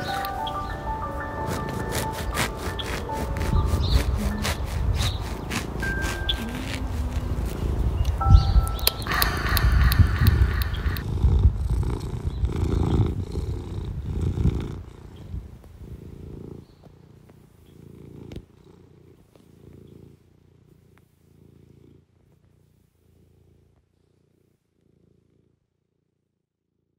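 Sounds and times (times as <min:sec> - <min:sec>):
cat purring: 0:00.0 - 0:26.9.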